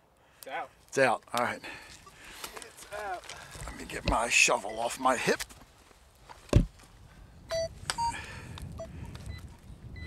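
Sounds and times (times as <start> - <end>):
short electronic beeps: 7.5 - 8.2.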